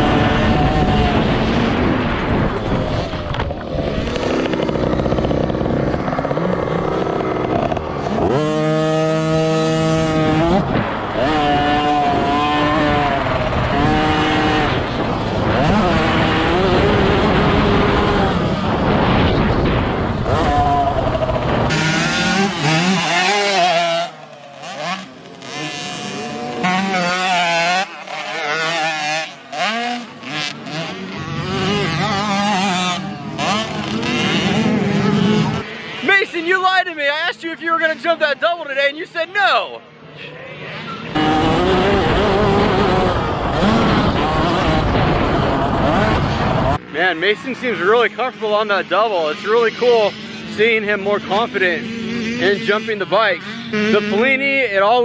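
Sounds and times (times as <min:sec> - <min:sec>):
distant minibike engines: 0:00.0 - 0:55.0
motocross bike engine revving: 0:00.0 - 0:55.0.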